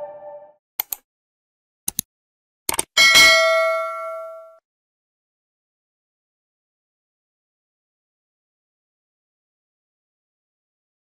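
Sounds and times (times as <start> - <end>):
bright bell-like chime: 0.0 - 0.5, 3.0 - 4.6
short clicks: 1.9 - 2.1.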